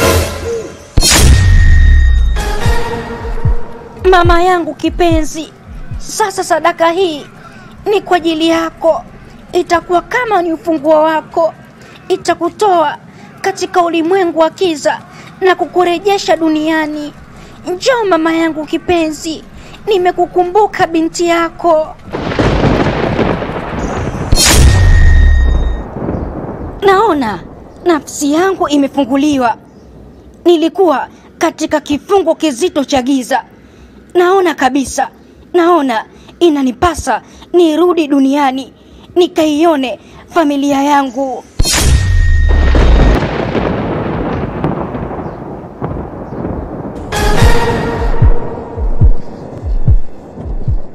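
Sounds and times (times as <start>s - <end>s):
sharp crack: 0.0s - 2.3s, 21.9s - 27.9s
deep noisy rumble: 1.0s - 6.4s, 42.2s - 50.9s
thunder-like rumbling roar: 22.1s - 27.8s, 42.5s - 50.9s.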